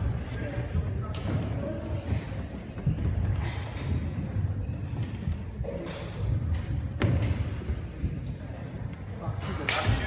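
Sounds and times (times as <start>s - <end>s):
voices in a gymnasium: 0.0s - 10.0s.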